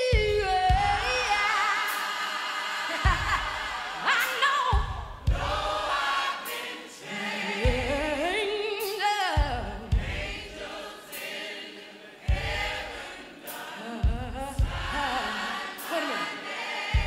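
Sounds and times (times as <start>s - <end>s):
choir singing gospel: 0.0s - 17.0s
bass drum strikes: 4.8s - 5.9s, 7.6s - 8.3s, 9.4s - 10.6s, 12.3s - 13.1s, 14.0s - 15.2s.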